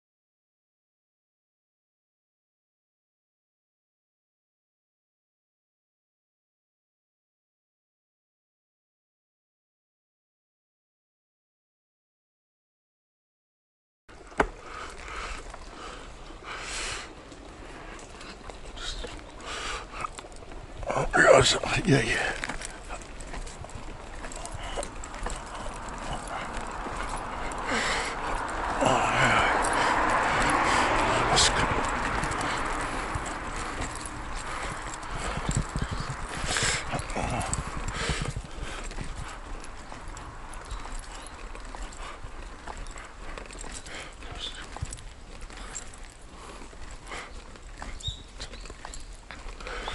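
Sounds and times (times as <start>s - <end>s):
person breathing in puffs: 14.5s - 20.2s, 22.2s - 39.6s, 40.7s - 48.6s, 49.4s - 49.9s
steady low rumble: 20.7s - 41.2s.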